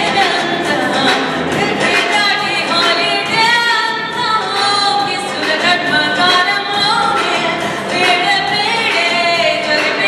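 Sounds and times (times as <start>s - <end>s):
backing music: 0.0s - 10.0s
woman singing into microphone: 0.0s - 10.0s.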